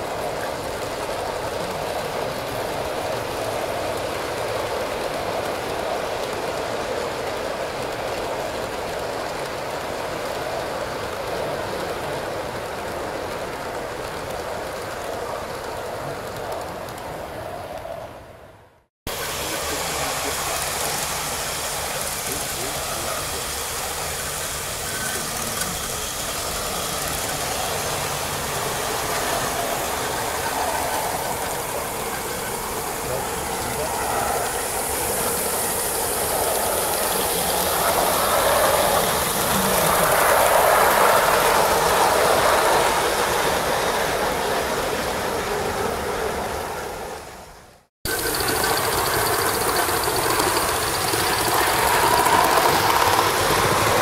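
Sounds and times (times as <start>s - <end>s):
model steam train running: 0.0s - 17.9s, 19.1s - 54.0s
wheels rolling on rails: 0.0s - 18.1s, 19.2s - 47.0s, 48.1s - 54.0s
exhaust steam chuffing: 19.1s - 45.8s, 48.1s - 54.0s.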